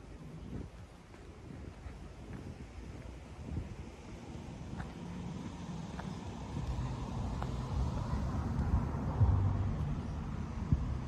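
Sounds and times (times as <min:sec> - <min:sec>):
motor vehicle engine rumble: 0:00.0 - 0:11.0
outdoor background noise: 0:00.0 - 0:11.0.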